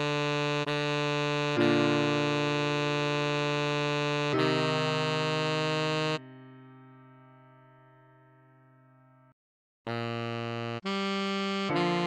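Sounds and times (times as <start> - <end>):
synthesized saxophone melody: 0.0 - 6.6, 9.9 - 12.0
backing chord: 0.0 - 8.0, 10.4 - 12.0.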